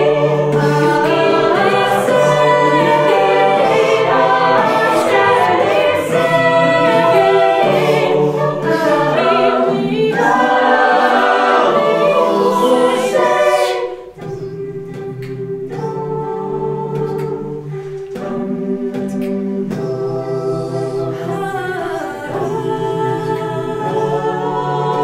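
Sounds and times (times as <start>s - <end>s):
a cappella group singing: 0.0s - 25.0s
vocal percussion: 0.0s - 25.0s.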